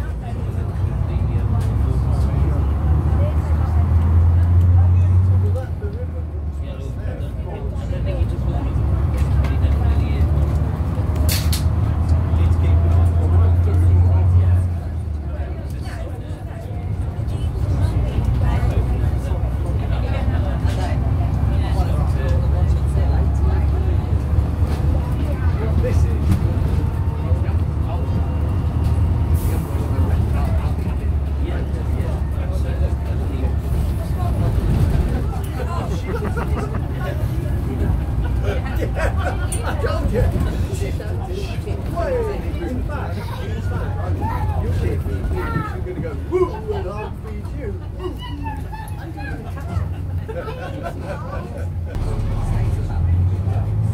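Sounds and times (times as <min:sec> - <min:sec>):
bus diesel engine drone: 0:00.0 - 0:53.9.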